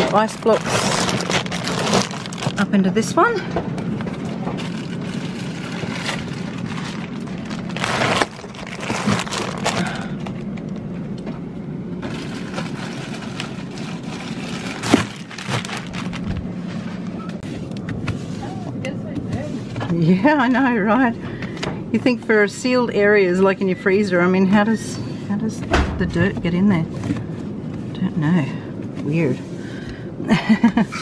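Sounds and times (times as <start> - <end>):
plastic crinkling: 0.0 - 3.1, 3.9 - 10.8, 12.0 - 17.5
low hum: 0.0 - 31.0.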